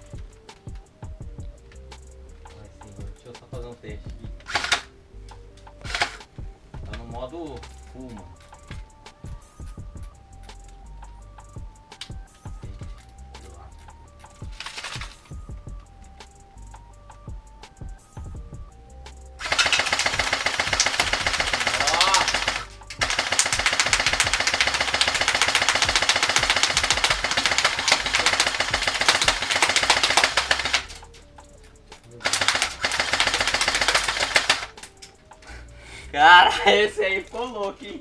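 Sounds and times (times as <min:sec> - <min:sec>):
electric rifle firing rapid bursts: 0:04.5 - 0:04.9, 0:05.9 - 0:06.2, 0:19.4 - 0:31.1, 0:32.2 - 0:34.8
person speaking: 0:21.5 - 0:22.6.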